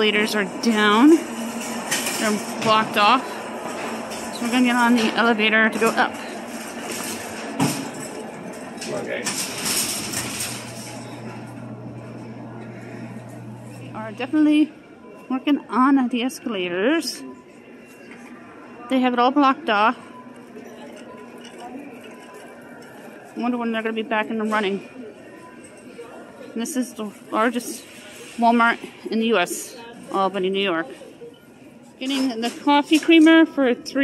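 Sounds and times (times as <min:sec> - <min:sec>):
wire shopping carts rattling: 0:00.0 - 0:12.3, 0:26.7 - 0:30.6
faint distant voices: 0:00.0 - 0:34.0.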